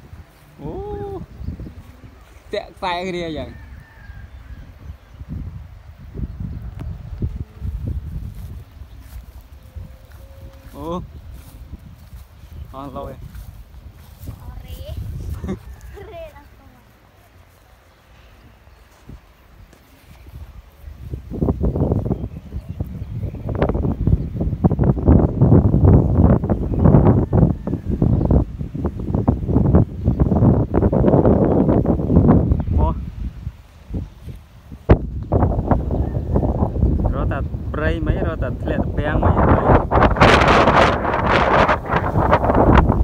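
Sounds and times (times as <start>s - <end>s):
wind gusting across microphone: 0.0s - 43.0s.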